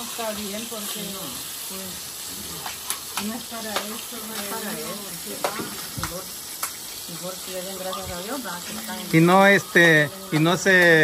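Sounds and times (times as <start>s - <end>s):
fish frying in hot oil: 0.0s - 11.0s.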